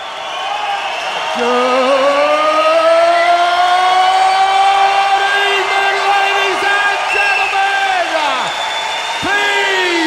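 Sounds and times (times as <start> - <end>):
man singing through pa: 1.3 - 5.8.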